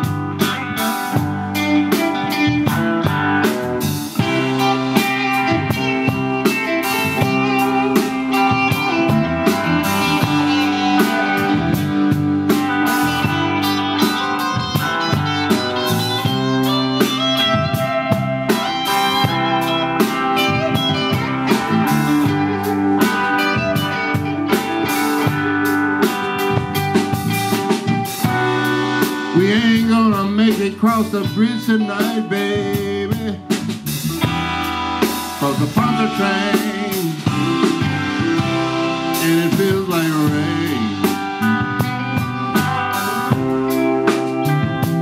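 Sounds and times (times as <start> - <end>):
bass guitar: 0.0 - 45.0
drum kit steady beat: 0.0 - 45.0
electric guitars: 0.0 - 45.0.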